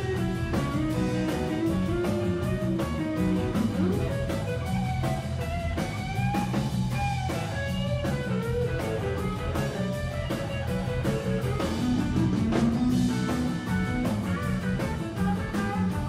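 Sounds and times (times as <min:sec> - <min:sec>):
drum kit: 0:00.0 - 0:16.0
electric bass line: 0:00.0 - 0:16.0
electric guitar lead lines: 0:00.0 - 0:16.0.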